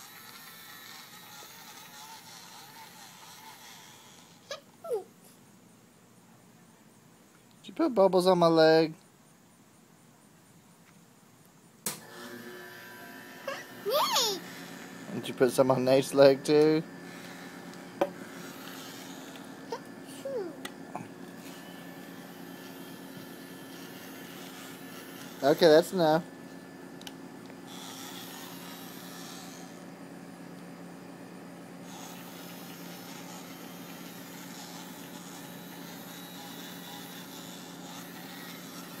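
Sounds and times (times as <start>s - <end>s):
small motor buzzing: 0.0s - 5.1s, 12.0s - 30.0s, 31.8s - 39.0s
background hiss: 3.1s - 12.2s.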